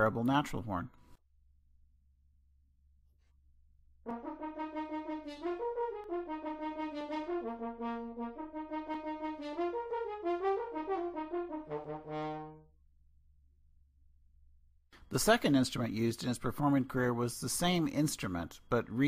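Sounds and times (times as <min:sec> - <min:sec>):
natural horn melody: 0:04.1 - 0:12.7.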